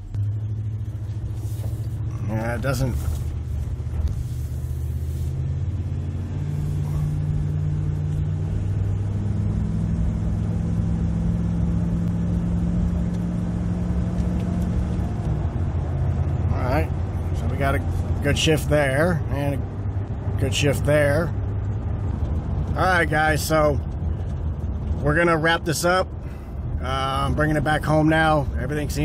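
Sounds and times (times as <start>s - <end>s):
pickup engine and transmission shifting: 0.0s - 29.0s.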